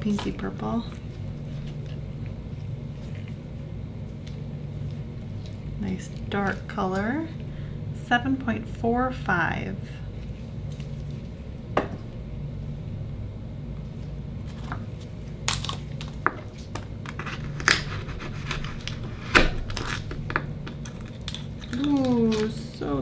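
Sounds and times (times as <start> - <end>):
soft wet handling sounds: 0.0 - 7.5, 10.1 - 11.6
steady low hum: 0.0 - 23.0.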